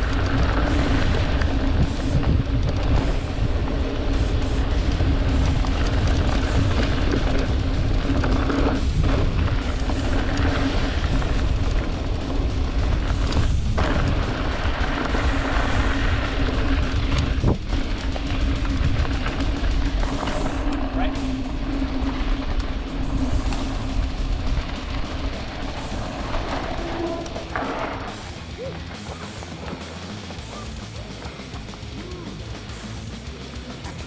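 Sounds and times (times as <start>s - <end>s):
wind rumbling on microphone: 0.0s - 28.6s
music: 0.0s - 34.0s
tyres rolling over loose dirt: 0.0s - 34.0s.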